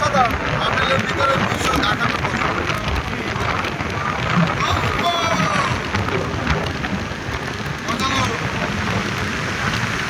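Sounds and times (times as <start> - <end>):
car road noise in tunnel: 0.0 - 10.0.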